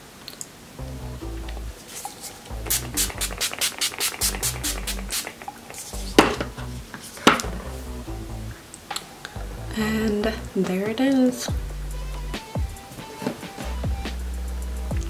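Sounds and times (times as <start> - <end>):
background music with steady beat: 0.8 - 15.0
spray bottle hissing: 1.8 - 6.4.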